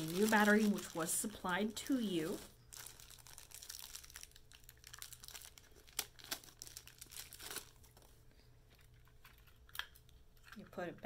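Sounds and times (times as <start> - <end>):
crinkling of hands handling plastic: 0.0 - 11.0.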